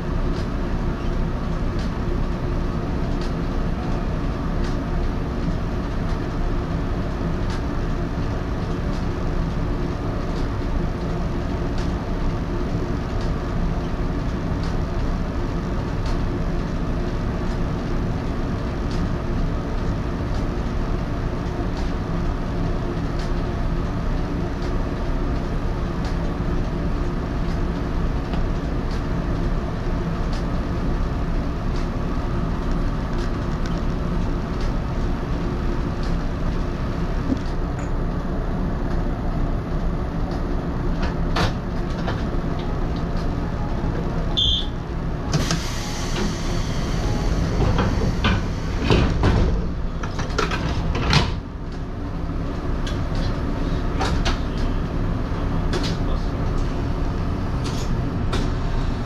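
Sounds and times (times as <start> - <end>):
railcar equipment humming: 0.0 - 59.0.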